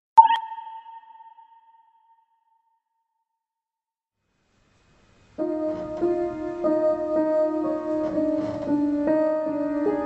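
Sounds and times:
sonar-like ping: 0.2s - 2.6s.

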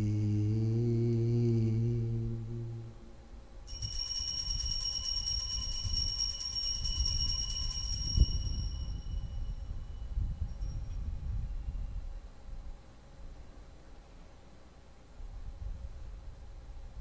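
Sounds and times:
altar bells ringing: 3.7s - 11.0s.

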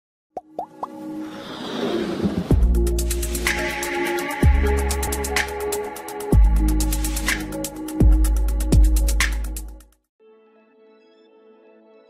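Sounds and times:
quick pops rising in pitch: 0.4s - 1.0s.

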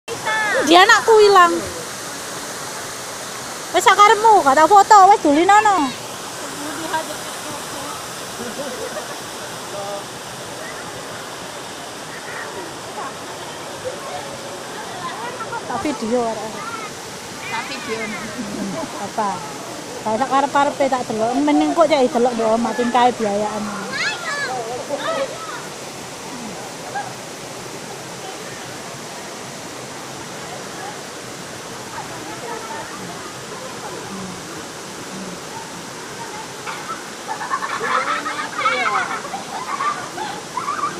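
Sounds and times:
waterfall and flowing stream: 0.1s - 40.9s.

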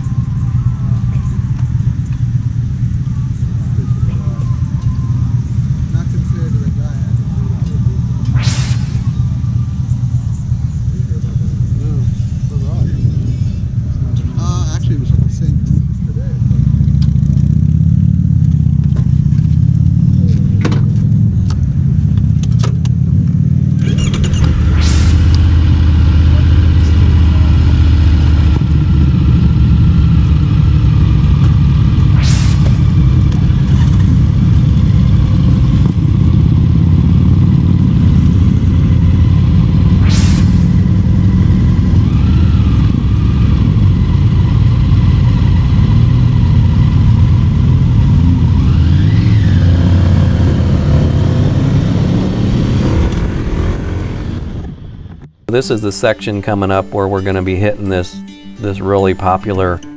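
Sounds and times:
motorcycle engines idling: 0.0s - 8.3s, 9.2s - 24.5s, 25.4s - 32.2s, 33.0s - 40.0s, 40.8s - 49.6s.

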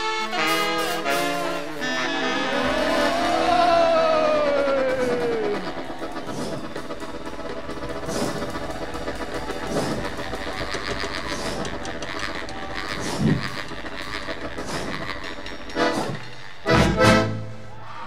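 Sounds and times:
brass chords: 0.0s - 8.7s, 10.0s - 17.7s
drums: 0.0s - 18.0s.

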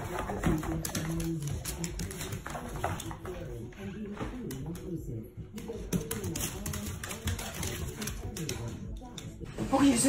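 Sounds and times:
taps and clicks on hardwood floor: 0.0s - 3.6s, 5.6s - 9.4s
low muffled voices: 0.0s - 10.0s.

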